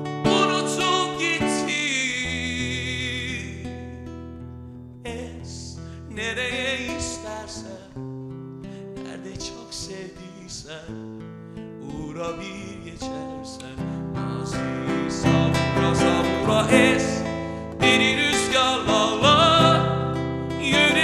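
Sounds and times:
acoustic guitar strummed and picked: 0.0 - 21.0.

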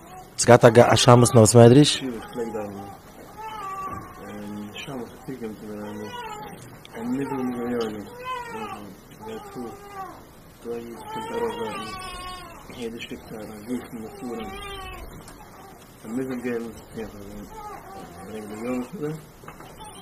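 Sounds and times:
quiet voices talking: 0.0 - 20.0.

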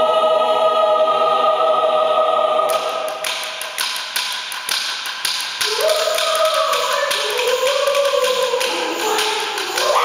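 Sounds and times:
choir singing: 0.0 - 3.8, 5.6 - 10.0
wooden sticks tapping: 2.7 - 10.0.

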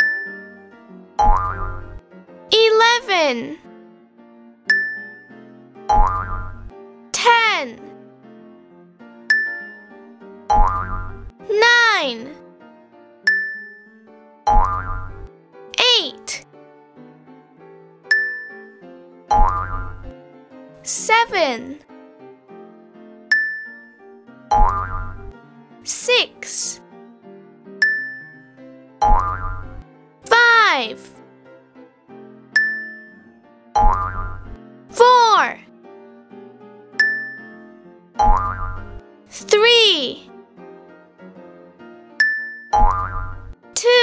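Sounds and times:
light children's music: 0.0 - 44.0
cartoon boing sound effect: 1.2 - 1.9, 5.9 - 6.6, 19.3 - 20.0, 24.5 - 25.2, 29.0 - 29.7, 33.8 - 34.5, 42.8 - 43.5
person speaking: 2.5 - 3.6, 7.2 - 7.8, 11.5 - 12.4, 15.8 - 16.4, 20.9 - 21.8, 25.9 - 26.8, 30.3 - 31.1, 35.0 - 35.6, 39.4 - 40.2, 43.8 - 44.0.

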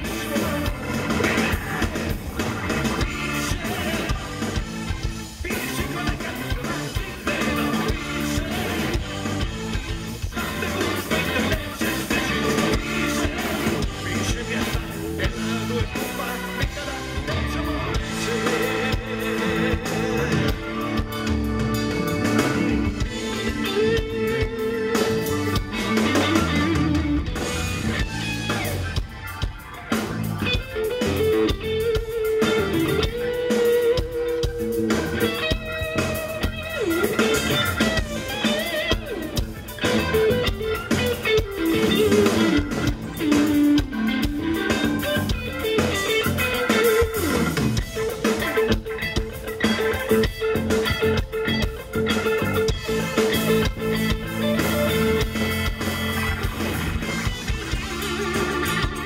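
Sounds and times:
bass guitar: 0.0 - 59.0
drums: 0.0 - 59.0
electric guitar lead melody: 0.0 - 59.0.

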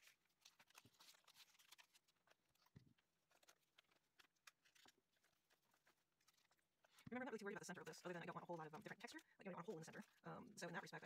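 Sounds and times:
paper strips rustling: 0.0 - 11.0.

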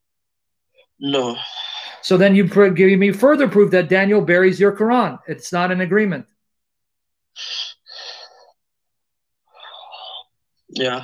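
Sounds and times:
person breathing: 0.7 - 2.1, 7.3 - 8.7, 9.4 - 10.4.

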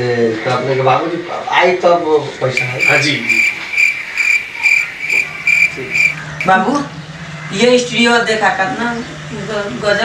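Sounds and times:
cricket chirping: 2.6 - 6.6.

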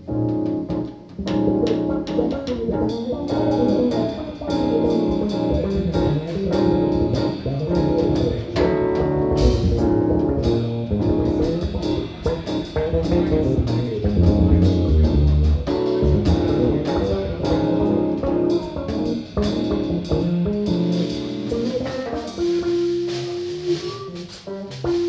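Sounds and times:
drum kit: 0.0 - 25.0
electric bass: 0.0 - 25.0
keyboards: 0.0 - 25.0.

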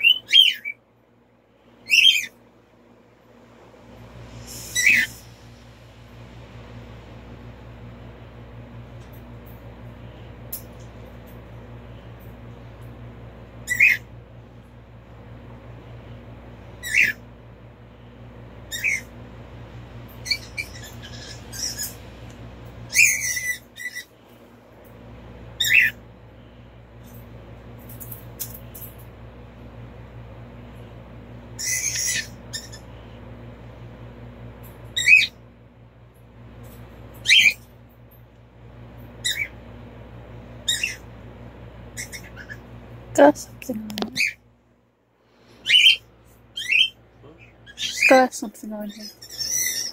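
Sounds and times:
steady low hum: 0.0 - 49.9.

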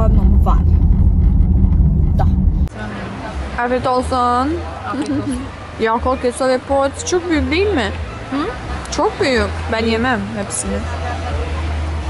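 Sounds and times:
car interior road and engine rumble: 0.0 - 6.0.

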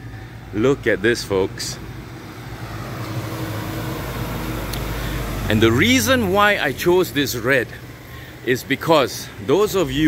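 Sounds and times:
vehicle engine idling: 0.0 - 10.0
broad rushing noise: 1.3 - 10.0.

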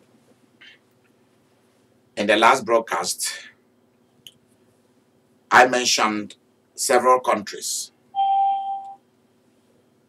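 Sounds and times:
electronic beep: 8.2 - 9.0.

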